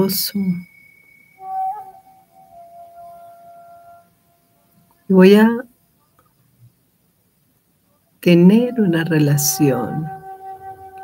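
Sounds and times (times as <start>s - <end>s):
sustained musical tone: 0.0s - 5.2s, 8.3s - 11.0s.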